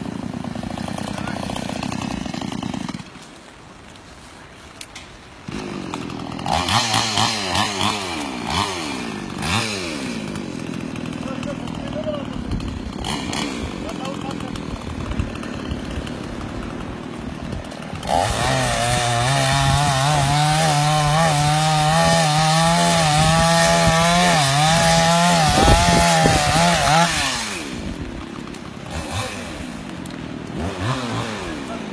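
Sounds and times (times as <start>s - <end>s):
chainsaw cutting branches: 0.0s - 31.9s.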